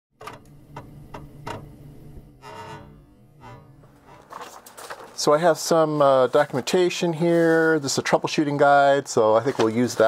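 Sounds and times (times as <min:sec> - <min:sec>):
low sustained string notes: 0:00.3 - 0:07.7.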